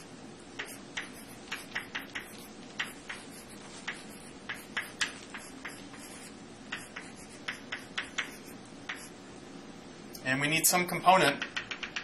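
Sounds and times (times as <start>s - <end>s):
faint room hum: 0.0s - 12.0s
chalk clicking on a blackboard: 0.6s - 9.2s, 11.3s - 12.0s.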